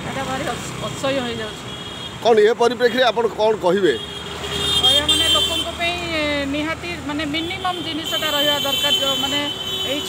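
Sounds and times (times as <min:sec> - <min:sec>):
vehicle engines humming: 0:00.0 - 0:10.0
car horn: 0:03.8 - 0:05.8, 0:07.4 - 0:10.0.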